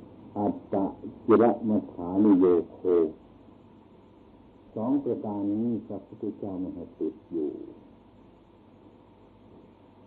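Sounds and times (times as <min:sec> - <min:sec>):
recording hiss: 0:00.0 - 0:10.0
man speaking in low voice: 0:00.3 - 0:03.2, 0:04.7 - 0:07.8.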